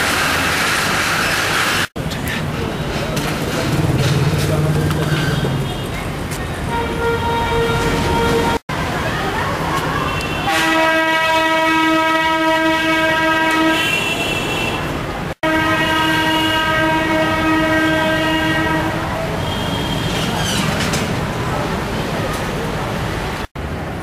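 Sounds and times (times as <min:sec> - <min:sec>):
street noise: 0:00.0 - 0:24.0
horn blowing long blasts: 0:06.7 - 0:08.6, 0:10.4 - 0:14.4, 0:15.4 - 0:20.0.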